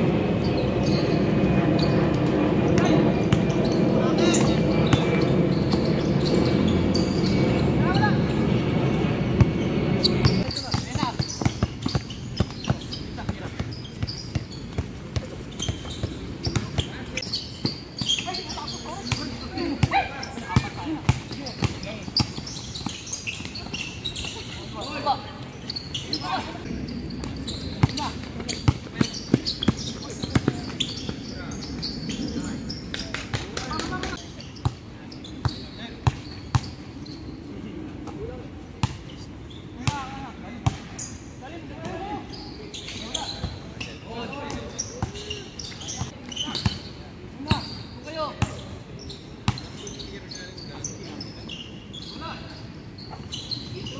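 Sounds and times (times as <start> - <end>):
basketball bouncing on hard court: 10.2 - 16.9, 20.6 - 24.3, 27.3 - 31.2.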